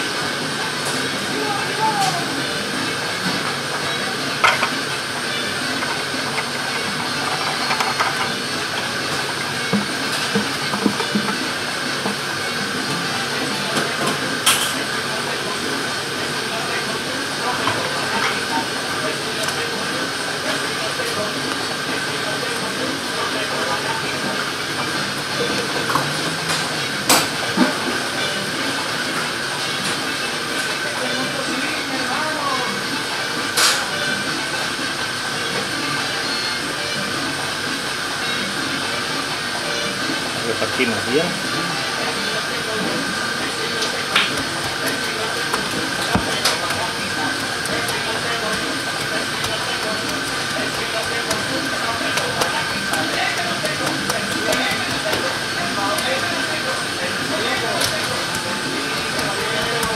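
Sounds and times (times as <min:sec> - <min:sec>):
ventilation fans hissing: 0:00.0 - 0:59.9.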